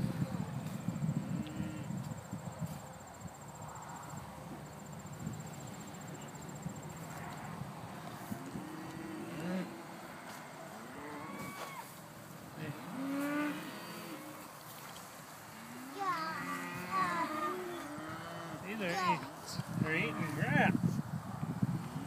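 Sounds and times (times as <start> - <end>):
cattle mooing: 8.5 - 11.8.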